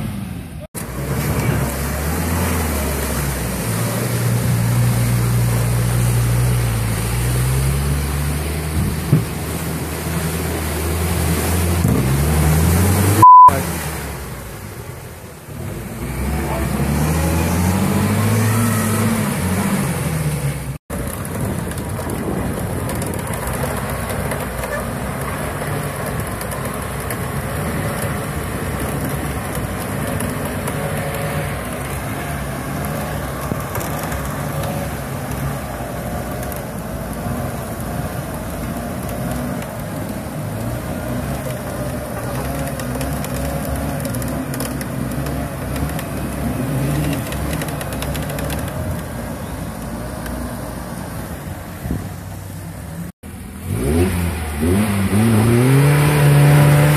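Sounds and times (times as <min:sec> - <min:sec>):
off-road vehicle engine revving: 0:00.0 - 0:56.9
tyres spinning in mud: 0:20.9 - 0:52.3.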